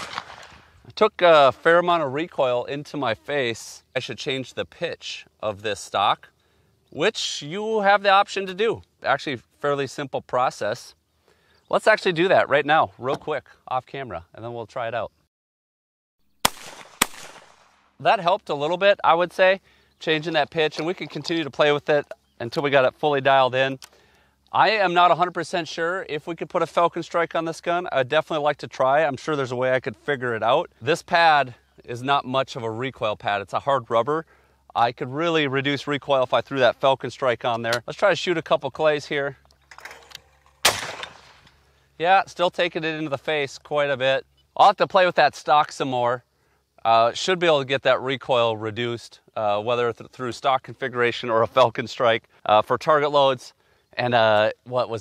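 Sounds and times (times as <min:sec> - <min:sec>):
shotgun shots with echo: 0:00.0 - 0:00.7, 0:16.4 - 0:17.9, 0:40.6 - 0:41.5.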